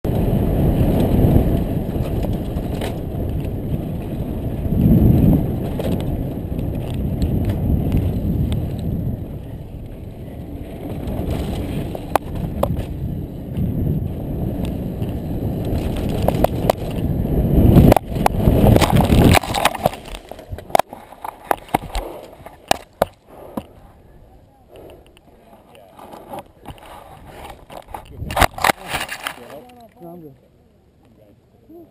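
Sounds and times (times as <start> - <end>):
bike rattling over rough track: 0.0 - 24.1, 24.9 - 30.2
wind buffeting camera: 0.0 - 30.3
scattered clicks and rustles: 0.8 - 13.8, 14.4 - 24.0, 24.7 - 31.2.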